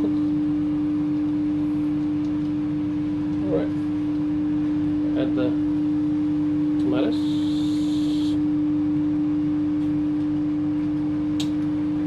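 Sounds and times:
kitchen appliance humming: 0.0s - 9.1s.

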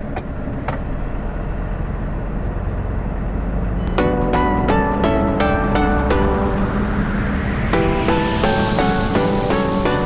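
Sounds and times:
truck engine and tyre rumble: 0.0s - 10.0s.

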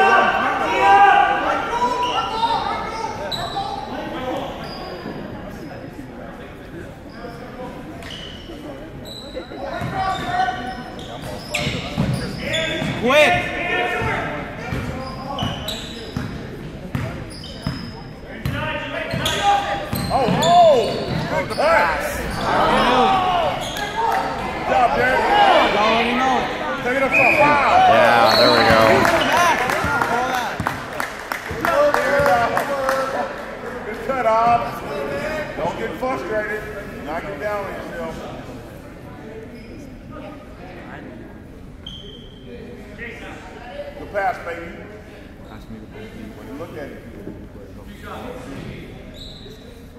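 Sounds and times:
sneakers squeaking on hardwood: 8.0s - 13.0s, 14.0s - 24.4s
echoing voices: 18.3s - 39.0s.

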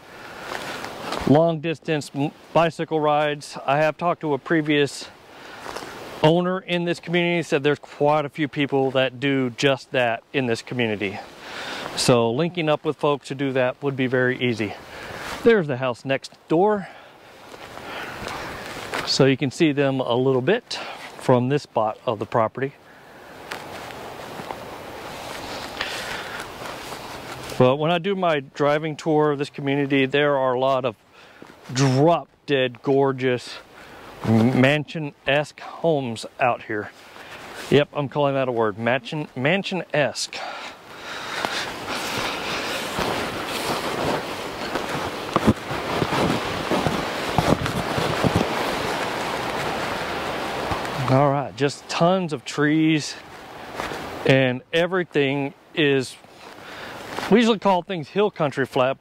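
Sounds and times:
footsteps rustling through dry grass: 0.2s - 1.4s, 4.4s - 6.3s, 17.2s - 19.3s, 23.2s - 27.7s, 36.2s - 51.1s, 53.2s - 54.3s, 56.2s - 57.6s
wind on microphone: 41.8s - 50.1s.

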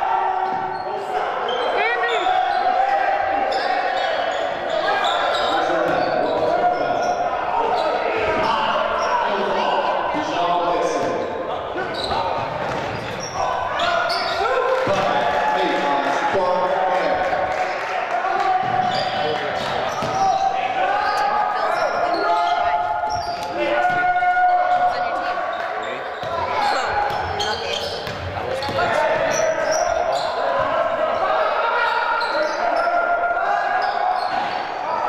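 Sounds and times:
people shouting: 0.0s - 10.1s, 13.2s - 25.5s.

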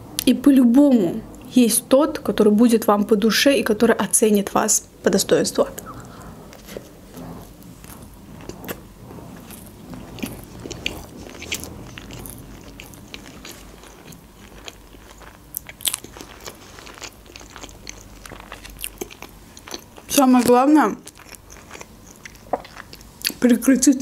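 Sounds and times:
chewing with crunchy clicks: 5.8s - 23.4s.

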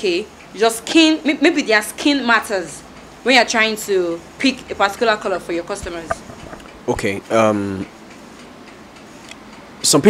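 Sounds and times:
faint room noise hiss: 0.0s - 10.0s
man speaking: 6.8s - 7.9s.

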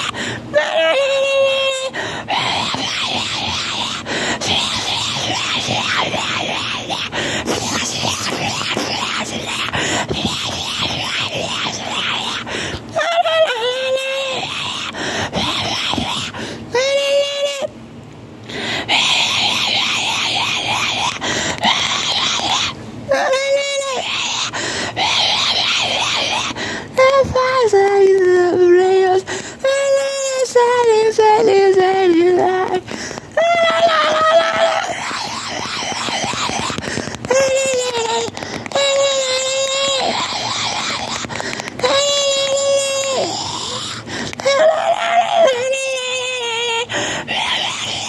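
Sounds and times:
person wailing: 0.0s - 17.7s, 18.8s - 48.0s
person's harsh raspy cry: 0.0s - 17.7s, 18.6s - 48.0s.

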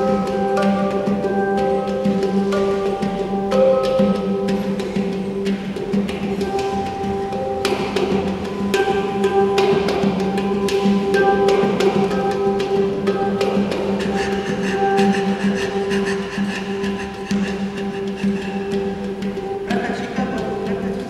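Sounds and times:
handpan notes ringing: 0.0s - 21.0s.

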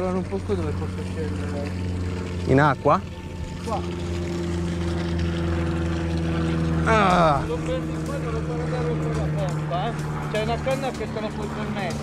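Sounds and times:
motor droning: 0.0s - 12.0s.

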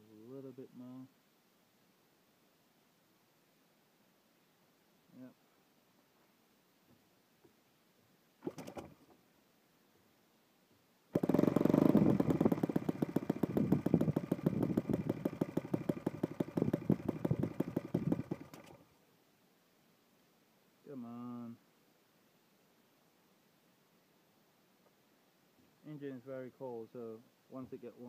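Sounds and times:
model engine running: 11.1s - 18.8s.

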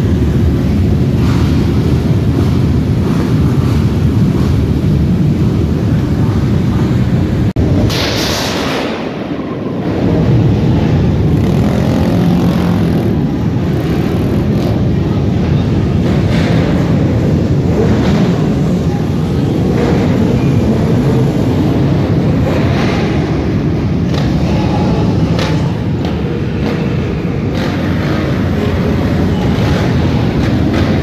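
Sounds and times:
many motorcycle engines revving: 0.0s - 31.0s.

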